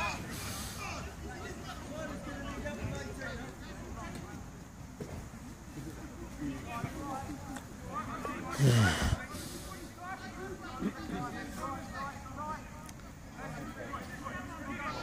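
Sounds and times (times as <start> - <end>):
faint voices of players calling: 0.0 - 15.0.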